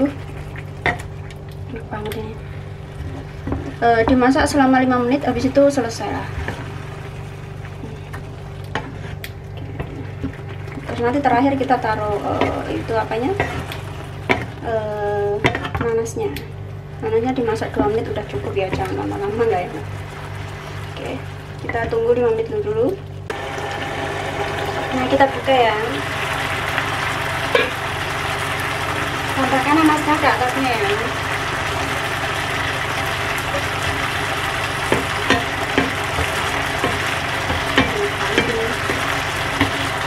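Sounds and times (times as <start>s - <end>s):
low steady hum: 0.0s - 40.0s
sauce bubbling: 5.2s - 14.7s, 17.6s - 21.8s, 23.0s - 40.0s.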